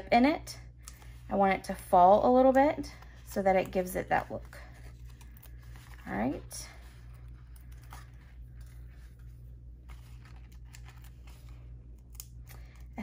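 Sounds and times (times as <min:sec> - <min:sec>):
steady low hum: 0:00.0 - 0:13.0
paper crackling and rustling: 0:02.9 - 0:13.0.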